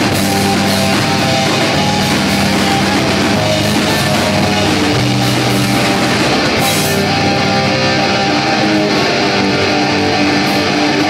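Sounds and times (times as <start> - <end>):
cymbal crash: 0.0 - 7.9
live rock band playing: 0.0 - 11.0.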